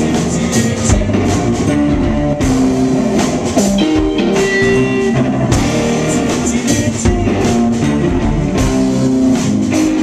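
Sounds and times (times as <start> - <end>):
loud drum hit: 0.0 - 9.1
electric guitar notes: 0.0 - 10.0
live rock band playing: 0.0 - 10.0.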